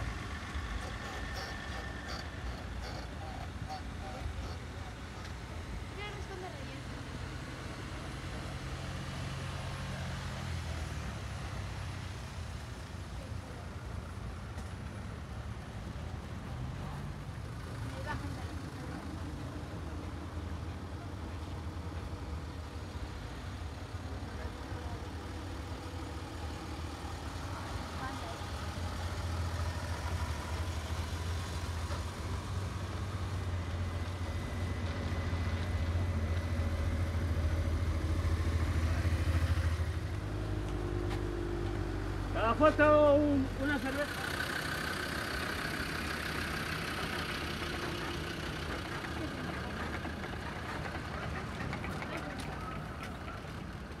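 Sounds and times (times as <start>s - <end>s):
vehicle engines rumbling past: 0.0s - 54.0s.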